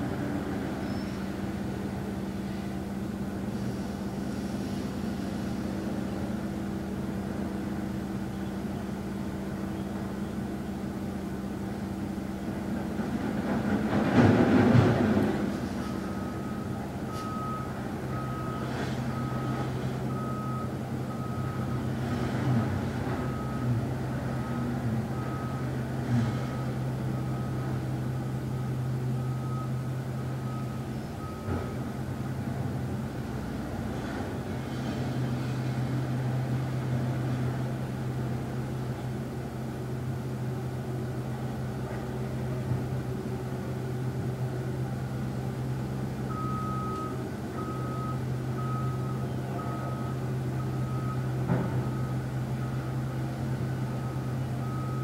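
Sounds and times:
truck engine hum: 0:00.0 - 0:55.0
truck reversing alarm beeping: 0:15.8 - 0:32.4, 0:45.6 - 0:55.0.

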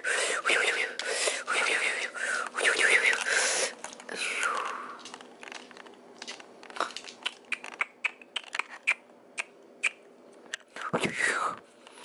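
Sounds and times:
dog chewing with clicks and crunches: 0:02.4 - 0:10.0.

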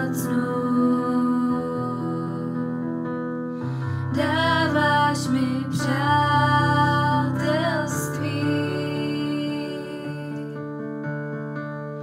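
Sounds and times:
person singing worship song: 0:00.0 - 0:02.8, 0:03.7 - 0:10.7
soft instrumental accompaniment: 0:00.0 - 0:12.0.

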